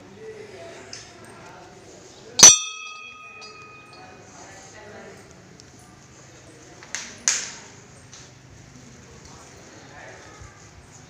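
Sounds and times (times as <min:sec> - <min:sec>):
temple bell ringing: 0:02.4 - 0:04.2.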